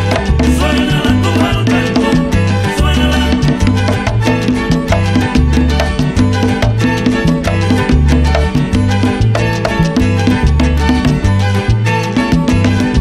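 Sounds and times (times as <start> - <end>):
instrumental salsa band: 0.0 - 13.0
repeating bass line: 0.0 - 13.0
steady percussion: 0.0 - 13.0.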